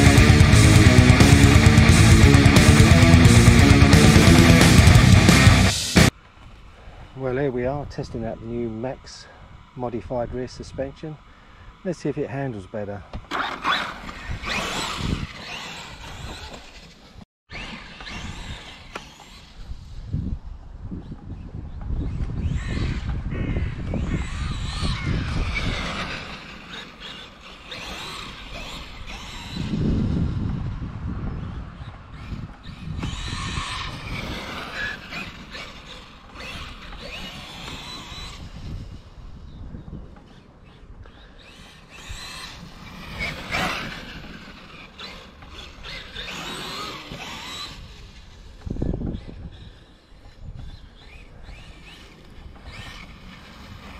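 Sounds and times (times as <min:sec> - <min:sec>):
low rumble: 0:00.0 - 0:06.1
electric motor whining: 0:00.0 - 0:06.2, 0:13.3 - 0:20.4, 0:21.0 - 0:53.9.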